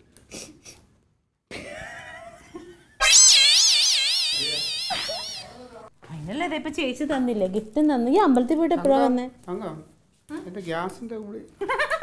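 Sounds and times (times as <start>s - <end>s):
high-pitched wobbling tone: 3.0s - 5.6s.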